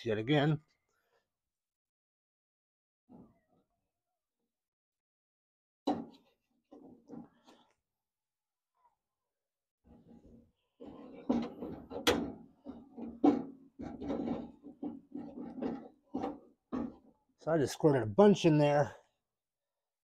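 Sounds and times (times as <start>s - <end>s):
knocks and scrapes on steel door: 5.8s - 7.6s, 9.9s - 17.2s.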